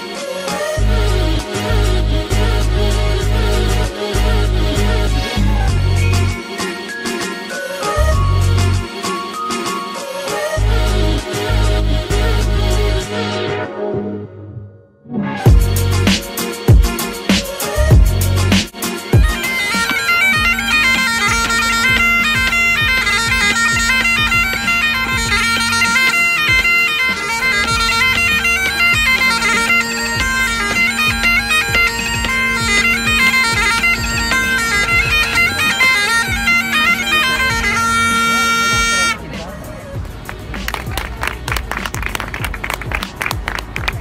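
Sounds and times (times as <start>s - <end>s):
voices: 0.0s - 13.2s, 15.5s - 44.0s
street and crowd noise: 0.0s - 14.2s, 15.2s - 44.0s
bagpipes playing: 15.5s - 39.3s.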